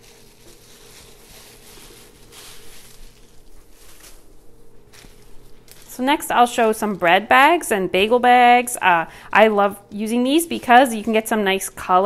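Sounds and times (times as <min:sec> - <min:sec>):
plastic bags rustling: 0:00.0 - 0:12.0.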